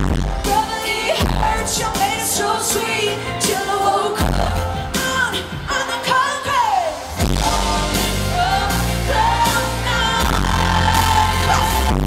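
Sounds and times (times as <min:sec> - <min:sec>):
distorted live pop song: 0:00.0 - 0:12.0
woman singing: 0:00.0 - 0:12.0.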